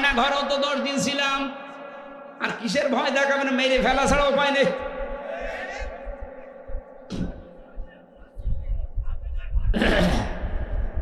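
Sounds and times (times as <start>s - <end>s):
man's voice over loudspeakers: 0.0s - 10.5s
low thumps and rumble: 4.8s - 11.0s.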